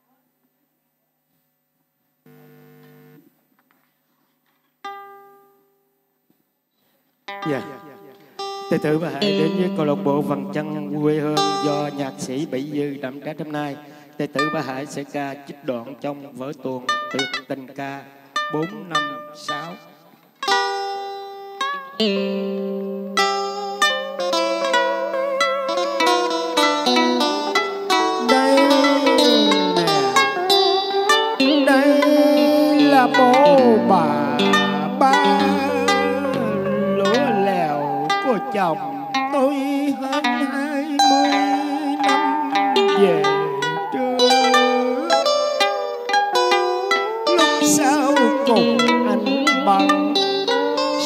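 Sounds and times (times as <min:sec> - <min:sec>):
held chord: 0:07.3 - 0:12.8, 0:20.5 - 0:51.0
plucked string note: 0:07.3 - 0:12.8, 0:20.4 - 0:51.0.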